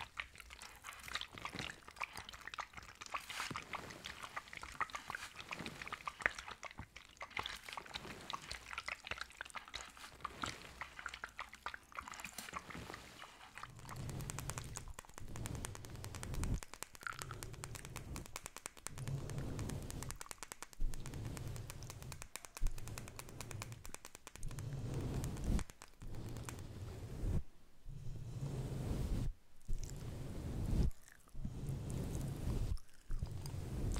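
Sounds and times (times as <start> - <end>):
brushes swept over microphone grille: 3.2 - 6.2, 12.2 - 16.6, 19.0 - 33.9.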